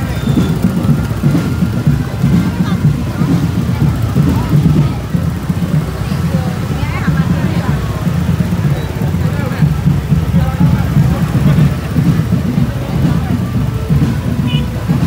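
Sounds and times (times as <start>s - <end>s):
motorbike engines running: 0.0s - 15.0s
people chattering: 0.0s - 15.0s.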